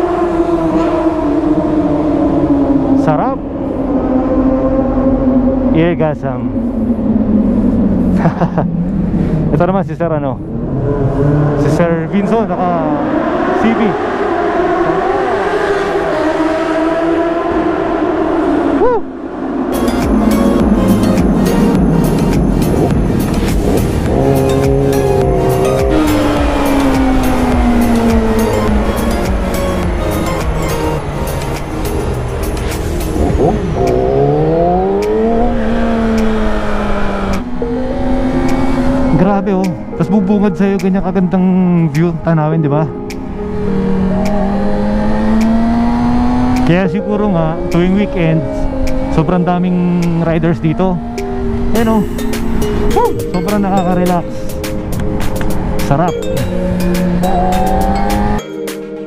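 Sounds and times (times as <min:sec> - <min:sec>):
motorcycle engine at speed: 0:10.4 - 0:39.2, 0:43.6 - 0:46.7
background music with beat: 0:19.7 - 0:34.3, 0:43.0 - 0:43.3, 0:51.2 - 0:59.0.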